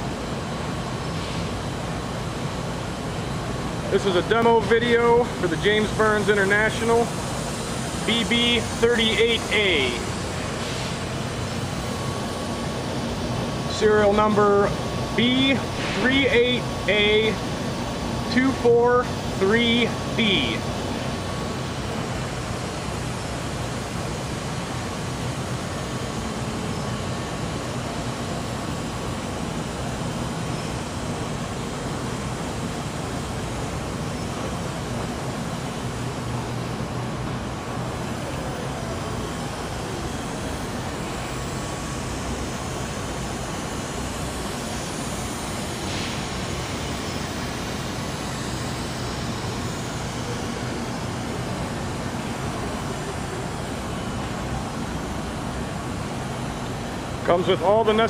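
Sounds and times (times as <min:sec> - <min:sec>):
binding machine humming: 0:00.0 - 0:58.0.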